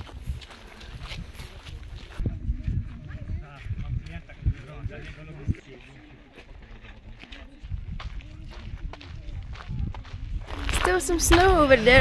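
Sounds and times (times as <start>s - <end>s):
footsteps on a path: 0.0s - 12.0s.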